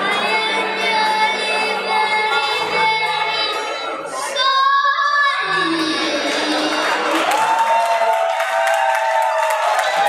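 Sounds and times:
audience applauding and cheering: 0:05.5 - 0:10.0.

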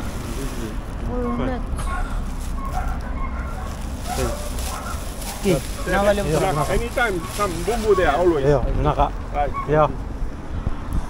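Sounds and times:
plastic bag rustling: 0:00.0 - 0:08.6
faint voices: 0:00.0 - 0:10.0
steady low rumble: 0:00.0 - 0:11.0.

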